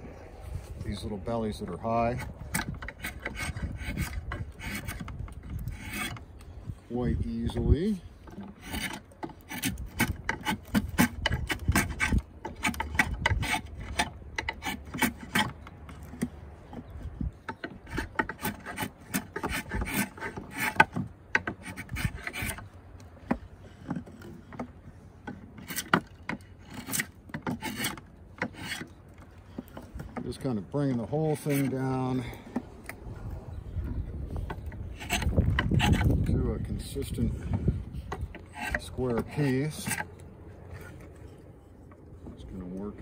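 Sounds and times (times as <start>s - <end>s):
draw knife scraping wood: 1.9s - 6.5s, 7.4s - 36.4s, 37.0s - 41.8s.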